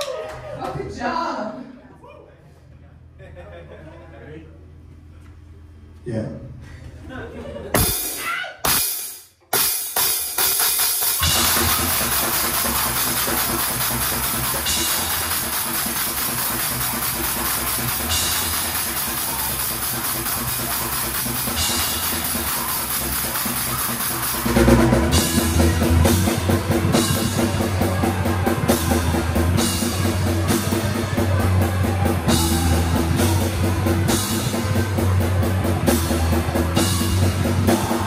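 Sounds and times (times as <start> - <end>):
drum hits: 7.8 - 38.0
live rock band playing: 7.8 - 38.0.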